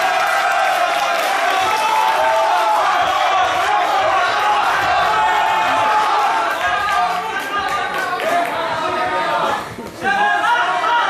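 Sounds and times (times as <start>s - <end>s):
crowd calling out: 0.0s - 11.0s.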